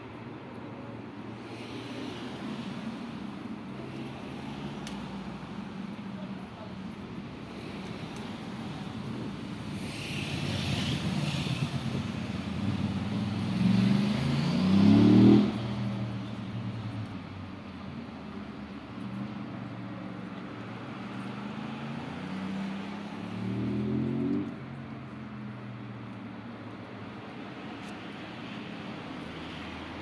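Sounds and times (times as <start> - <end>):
low rumble of traffic: 0.0 - 30.0
vehicle engine accelerating: 10.1 - 16.1, 21.5 - 24.8.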